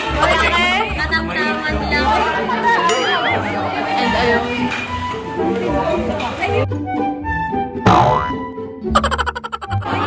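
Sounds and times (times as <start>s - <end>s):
voices chattering: 0.0s - 6.6s
background music: 0.0s - 10.0s.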